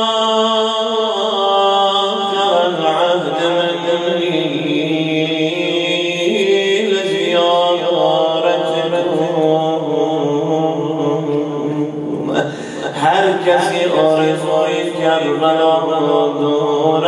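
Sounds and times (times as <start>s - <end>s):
man chanting into a microphone: 0.0s - 17.0s.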